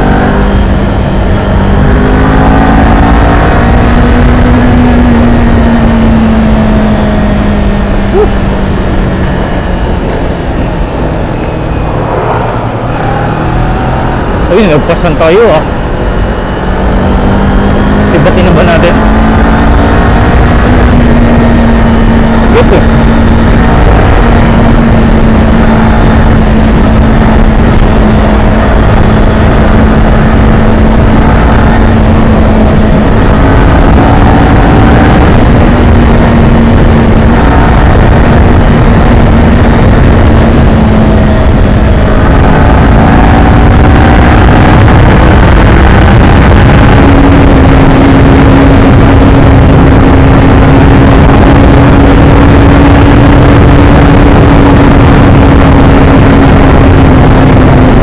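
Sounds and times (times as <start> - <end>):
heavy wind rumble: 0.0 - 58.0
motorcycle engine cruising: 0.0 - 58.0.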